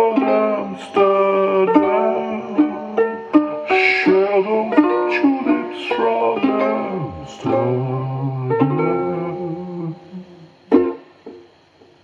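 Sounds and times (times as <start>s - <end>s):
ukulele chords strummed: 0.0s - 11.6s.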